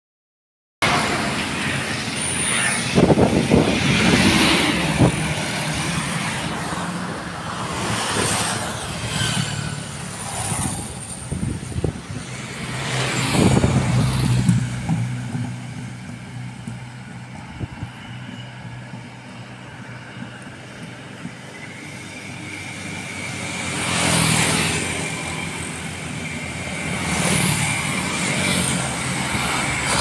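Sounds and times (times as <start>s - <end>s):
cars and trucks passing: 0.8s - 30.0s
motorcycles passing: 0.8s - 30.0s
steady engine hum: 0.8s - 30.0s.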